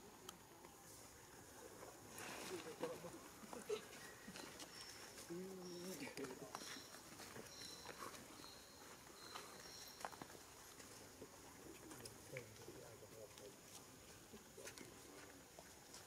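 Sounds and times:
faint forest ambience: 0.0 - 16.0.

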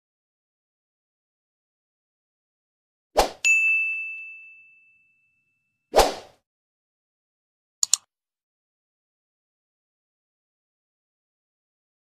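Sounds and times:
bright bell-like ding: 3.4 - 5.7.

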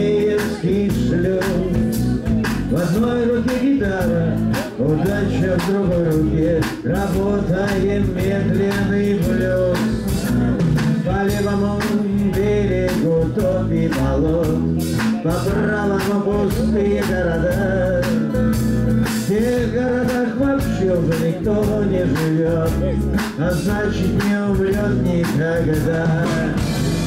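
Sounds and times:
bass guitar: 0.0 - 27.0
drum kit beat: 0.0 - 27.0
strummed acoustic guitar: 0.0 - 27.0.

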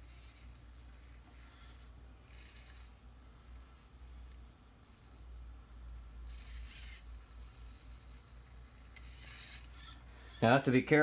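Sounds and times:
faint servo whirring: 0.0 - 11.0.

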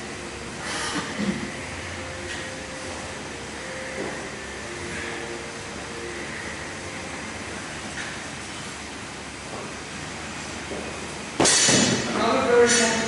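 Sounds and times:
room hum and hiss: 0.0 - 13.0
faint steady tones: 1.4 - 9.4.

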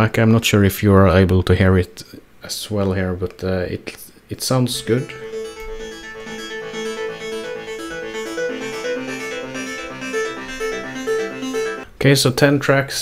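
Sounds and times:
synth music through laptop speakers: 4.7 - 11.9.

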